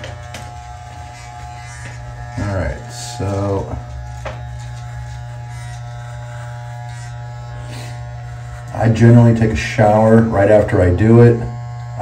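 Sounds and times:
hair trimmer buzzing: 0:00.0 - 0:12.0.

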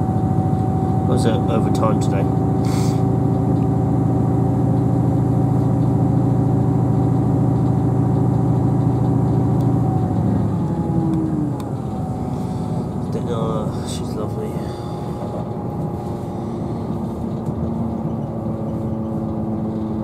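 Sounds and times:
diesel engine droning: 0:00.0 - 0:20.0
train rumbling in motion: 0:00.0 - 0:20.0.

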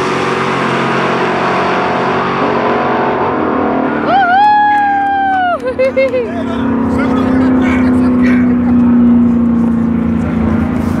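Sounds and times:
engine running steadily: 0:00.0 - 0:11.0
faint voices: 0:06.2 - 0:10.5.

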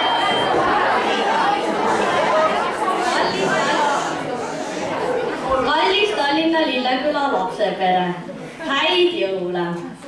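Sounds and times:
overlapping chatter: 0:00.0 - 0:10.0.

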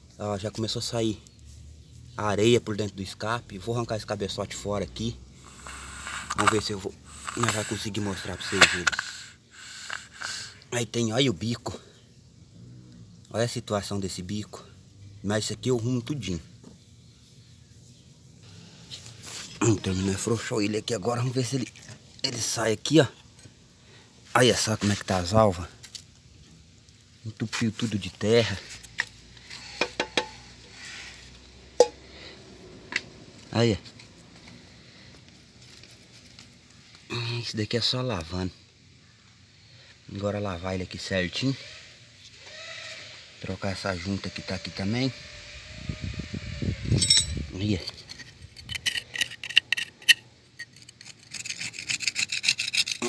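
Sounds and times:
steel blade scraping mud off metal: 0:06.0 - 0:09.0, 0:47.9 - 0:53.0
metal parts clinking and knocking: 0:47.0 - 0:53.0.

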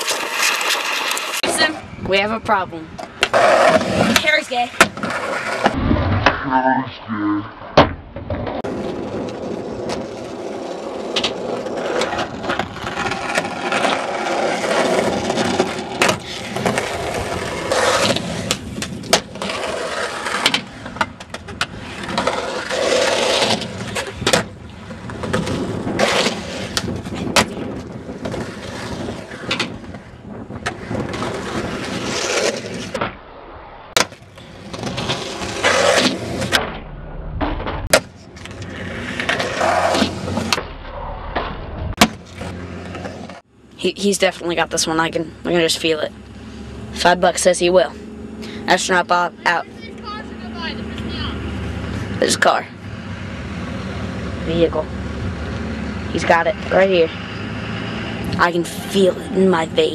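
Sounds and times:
skateboard wheels rolling: 0:00.0 - 0:05.8, 0:08.2 - 0:36.7, 0:37.4 - 0:43.5, 0:48.7 - 0:59.9
skateboard pops and landings: 0:23.4 - 0:33.3, 0:34.0 - 0:43.4.

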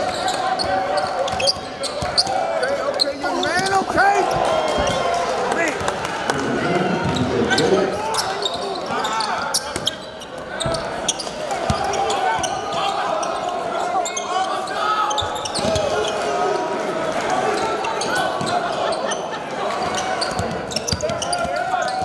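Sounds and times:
echoing crowd and player voices: 0:00.0 - 0:22.0
basketball bouncing on wooden court: 0:01.3 - 0:02.3.

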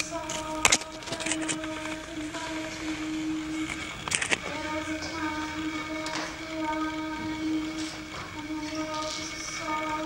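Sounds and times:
sharp clicks: 0:00.0 - 0:06.8.

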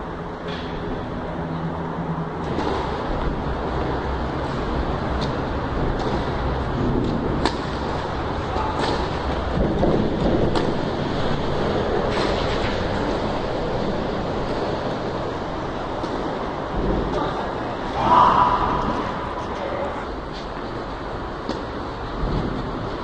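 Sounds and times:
low rumbling noise: 0:00.0 - 0:23.0.

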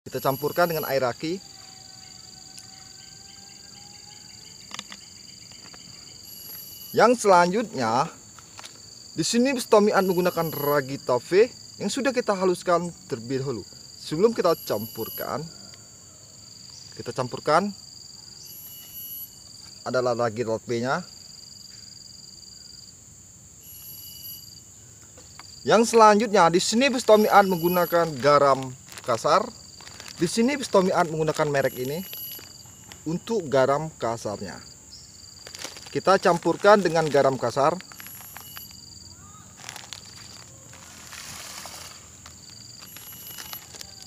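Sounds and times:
insects droning: 0:00.0 - 0:44.0.

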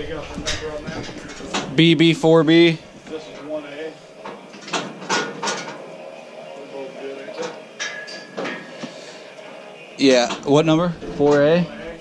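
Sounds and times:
muffled voices: 0:00.0 - 0:12.0
sharp knocks and clatters: 0:00.3 - 0:01.8, 0:04.2 - 0:05.8.

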